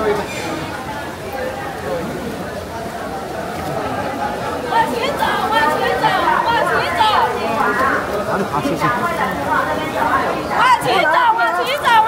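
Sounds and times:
crowd of people talking: 0.0s - 12.0s.

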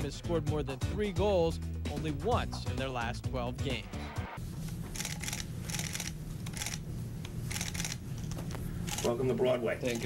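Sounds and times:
steady low hum: 4.4s - 10.0s
camera shutters clicking: 5.0s - 6.8s, 7.5s - 9.2s.

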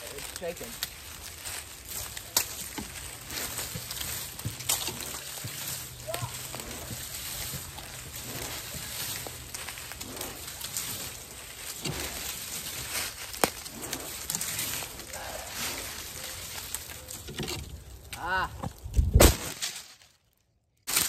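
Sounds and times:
sharp wood crack: 0.0s - 21.0s
twigs and branches rattling: 0.0s - 21.0s.

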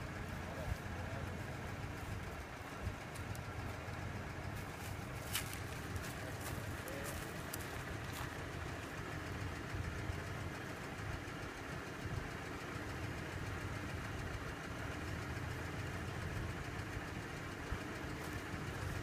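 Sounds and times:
engine idling: 0.0s - 19.0s.

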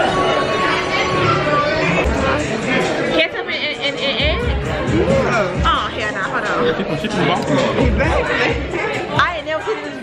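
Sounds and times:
background music: 0.0s - 10.0s
people chatting: 0.0s - 10.0s.

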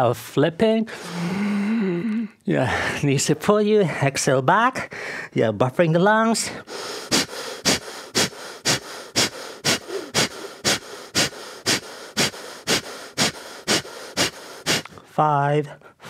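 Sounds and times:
person breathing forcefully: 0.9s - 2.0s, 4.8s - 5.3s, 6.5s - 15.0s.

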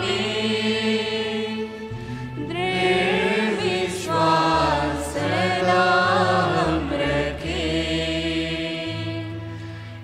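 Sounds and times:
voices singing chant-like notes: 0.0s - 9.7s.

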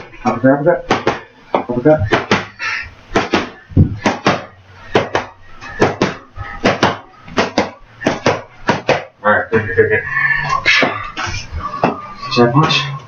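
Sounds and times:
boxing gloves hitting focus mitts: 0.2s - 2.5s, 3.1s - 9.1s.

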